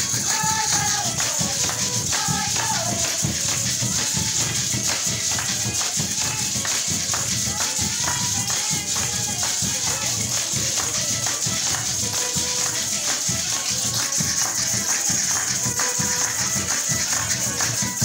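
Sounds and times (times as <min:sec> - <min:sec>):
hand drum beat: 0:00.0 - 0:18.0
maracas shaking: 0:00.0 - 0:18.0
voices singing along: 0:00.0 - 0:18.0.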